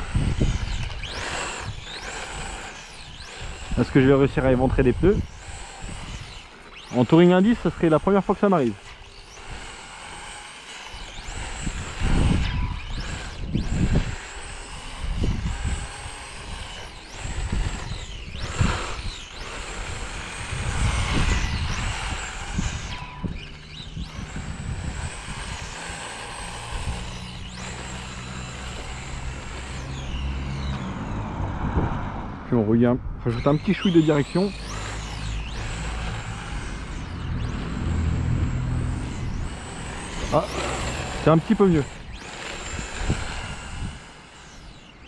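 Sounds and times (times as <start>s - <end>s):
electric motor whining: 0.0s - 45.0s
low rumbles: 11.3s - 44.4s.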